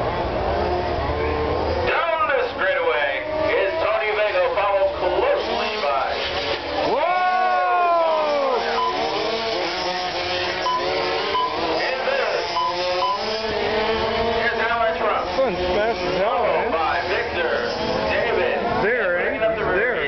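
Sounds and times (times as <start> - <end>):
model car electric motors whining: 0.2 - 20.0.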